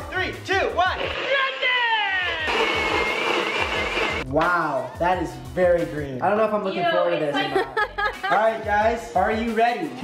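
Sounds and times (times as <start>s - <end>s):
blender running: 0.9s - 4.2s
background music with beat: 2.1s - 6.4s, 7.4s - 10.0s.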